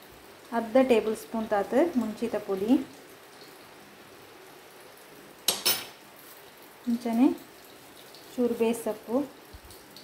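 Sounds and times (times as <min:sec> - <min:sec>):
metal spoon clinking on dish: 0:05.5 - 0:06.0.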